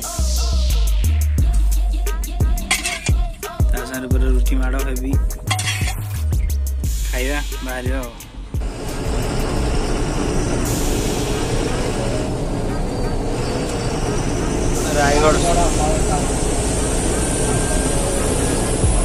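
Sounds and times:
truck engine and road rumble: 0:01.4 - 0:19.0
held drone: 0:08.6 - 0:19.0.

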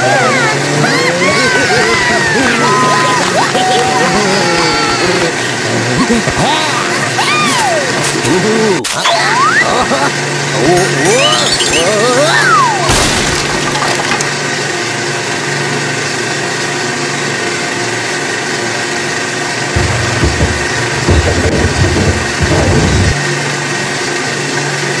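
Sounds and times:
film projector running: 0:00.1 - 0:05.7
low rumbling thumps: 0:19.8 - 0:23.3.

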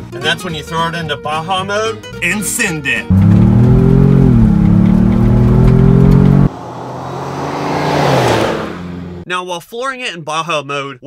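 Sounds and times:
engine at full throttle: 0:03.1 - 0:09.1
vehicle driving past on dirt road: 0:03.1 - 0:09.2.

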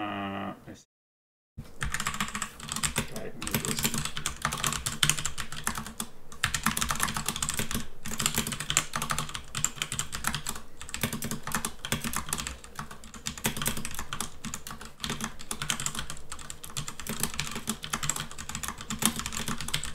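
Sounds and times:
low steady hum: 0:01.6 - 0:19.9
fast typing on keyboard: 0:01.8 - 0:19.9.

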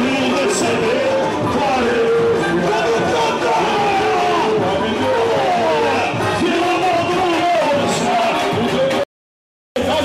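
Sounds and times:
samba band playing: 0:00.0 - 0:09.0
voices singing: 0:00.0 - 0:09.0.

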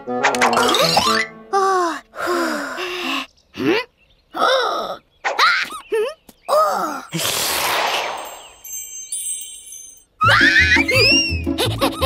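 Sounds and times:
sparkling chime effect: 0:08.0 - 0:10.2.

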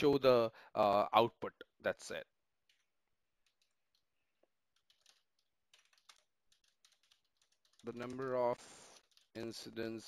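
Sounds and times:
typing on computer keyboard: 0:02.6 - 0:04.1, 0:04.7 - 0:09.8.

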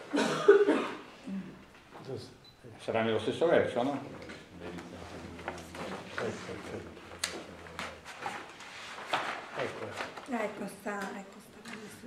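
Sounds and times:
person coughing: 0:00.1 - 0:01.6.

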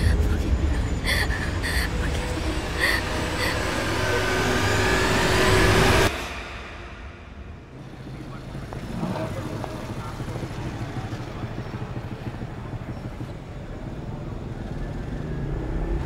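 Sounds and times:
indistinct voices: 0:00.0 - 0:13.3
traffic noise: 0:00.0 - 0:16.0.

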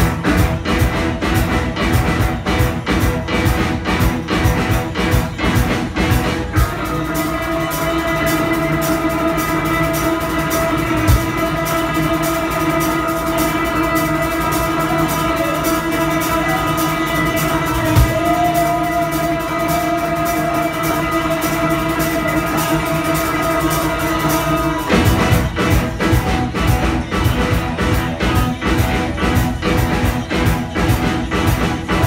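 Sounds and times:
live rock band playing: 0:00.0 - 0:32.0.

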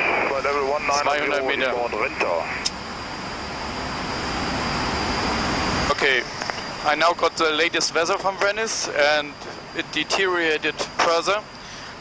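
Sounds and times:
airflow and engine noise in cockpit: 0:00.0 - 0:12.0.

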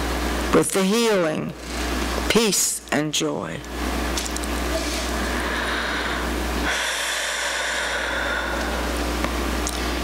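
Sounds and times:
electrical hum and hiss: 0:00.0 - 0:10.0.

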